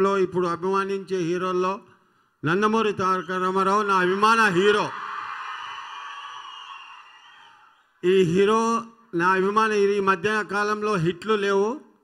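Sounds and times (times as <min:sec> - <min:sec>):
crowd cheering: 0:03.2 - 0:07.8.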